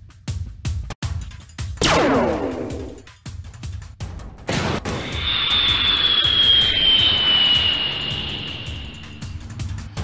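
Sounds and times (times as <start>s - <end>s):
jet engine flyby whine: 4.8s - 10.0s.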